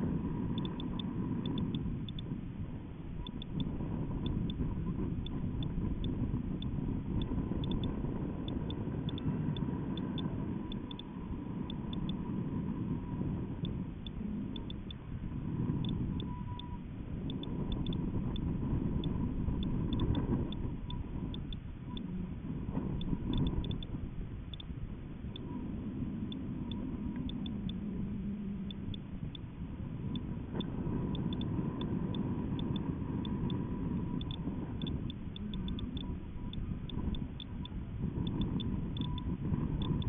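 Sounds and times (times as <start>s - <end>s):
faint ticks: 0.0s - 2.4s, 3.1s - 40.0s
faint steady whine: 0.0s - 40.0s
wind buffeting microphone: 0.0s - 40.0s.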